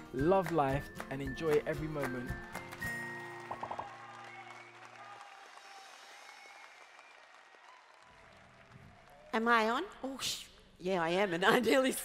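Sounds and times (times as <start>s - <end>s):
faint audience applause: 0.4s - 9.7s.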